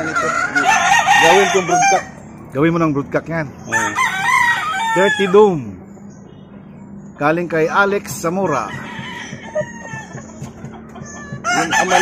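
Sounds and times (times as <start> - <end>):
rooster crowing: 0.1 - 2.2, 3.7 - 5.6, 8.4 - 12.0.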